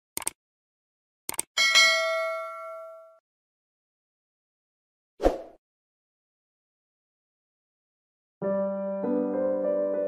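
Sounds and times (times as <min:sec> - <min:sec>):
double clicks: 0:00.2 - 0:00.4, 0:01.3 - 0:01.5
bell ding: 0:01.6 - 0:03.2.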